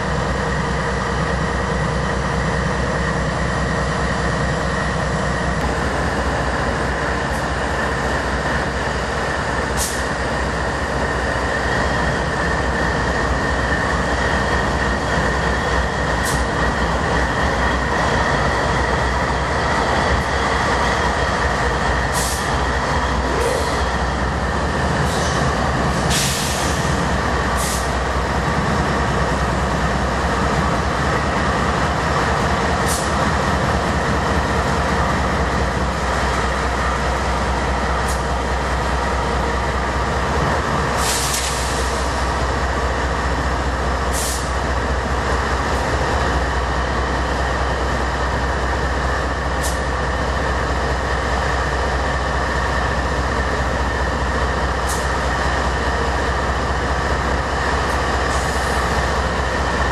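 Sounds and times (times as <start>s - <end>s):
diesel locomotive engines idling: 0.0s - 59.9s
short sharp air hisses: 9.8s - 10.1s, 22.1s - 22.5s, 26.1s - 27.0s, 27.6s - 28.0s, 41.0s - 42.2s, 44.1s - 44.5s.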